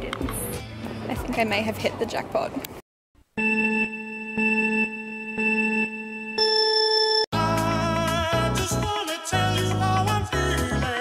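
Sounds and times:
long high beep: 3.4s - 7.3s
low electronic beeps: 3.4s - 7.3s.

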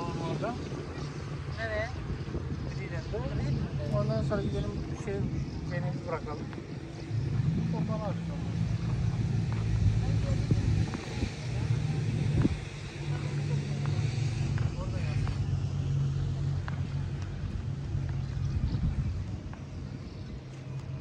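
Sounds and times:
boat engine idling: 0.0s - 21.0s
faint voices: 0.0s - 21.0s.

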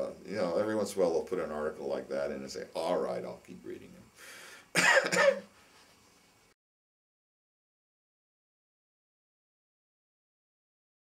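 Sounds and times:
person breathing: 4.2s - 4.8s
person coughing: 4.8s - 5.5s.

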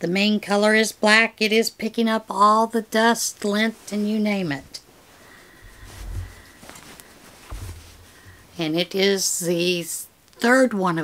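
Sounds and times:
cloth quilt rustling: 3.5s - 8.6s.

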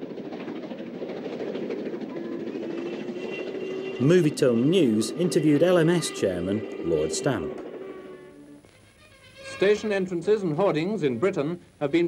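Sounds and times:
steam train rumbling: 0.0s - 10.6s.

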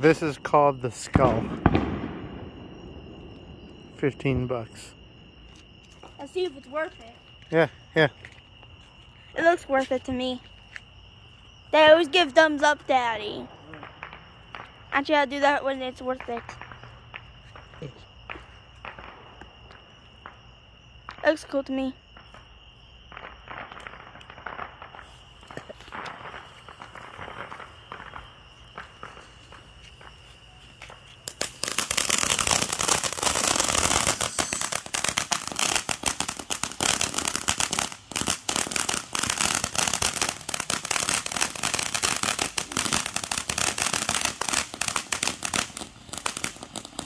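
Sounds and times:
high insect chirr: 0.0s - 47.0s
firework spraying sparks crackling: 23.3s - 47.0s.

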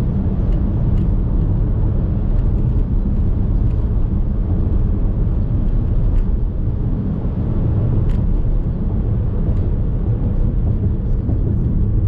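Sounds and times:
car road and tyre rumble: 0.0s - 12.0s.

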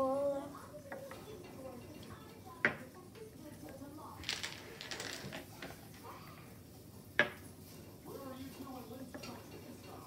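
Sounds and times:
dominoes clicking on wooden table: 4.2s - 5.7s.

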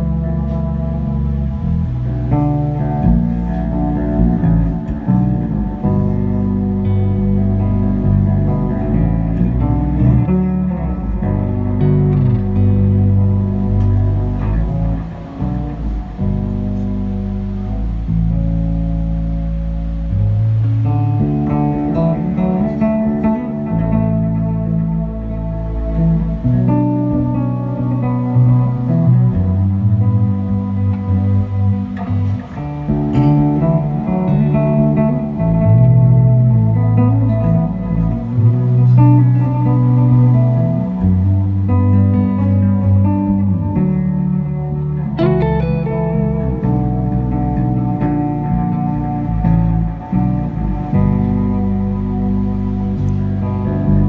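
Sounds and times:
electric bass notes: 0.0s - 54.0s
electric guitar: 0.0s - 54.0s.

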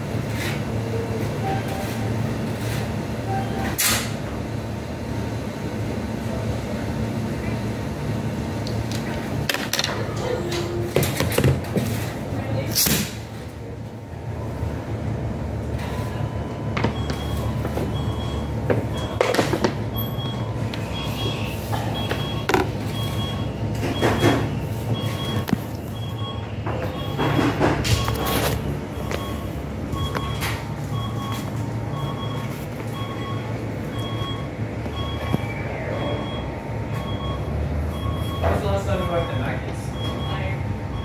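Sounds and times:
two-tone electronic beep: 28.9s - 38.5s.

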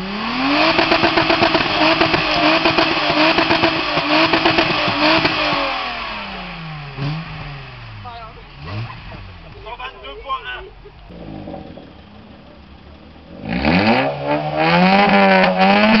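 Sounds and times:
car engine revving hard: 0.0s - 9.9s, 11.1s - 16.0s.

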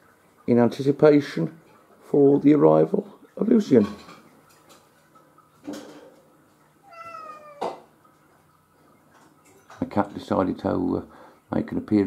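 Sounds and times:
cat meowing: 6.8s - 7.9s.

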